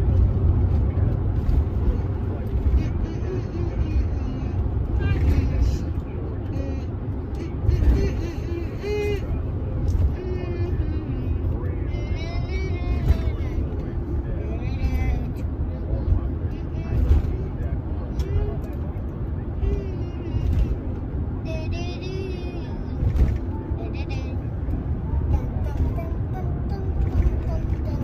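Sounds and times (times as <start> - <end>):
road and engine rumble: 0.0 - 28.0.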